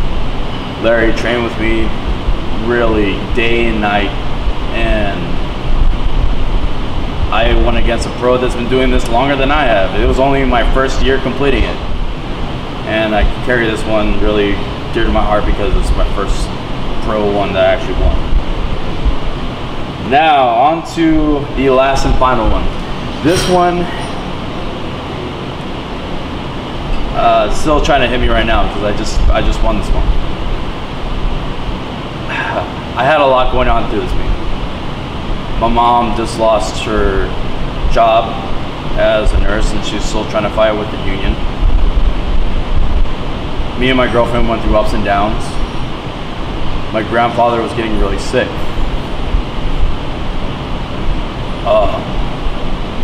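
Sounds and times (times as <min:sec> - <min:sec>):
low hum and hiss: 0:00.0 - 0:53.0
rushing noise with low rumble: 0:00.0 - 0:53.0
speech: 0:00.8 - 0:02.0, 0:02.6 - 0:05.4, 0:07.3 - 0:11.8, 0:12.9 - 0:18.3, 0:20.0 - 0:24.2, 0:27.1 - 0:30.2, 0:32.3 - 0:34.3, 0:35.6 - 0:41.4, 0:43.8 - 0:45.6, 0:46.9 - 0:48.6, 0:51.6 - 0:52.1.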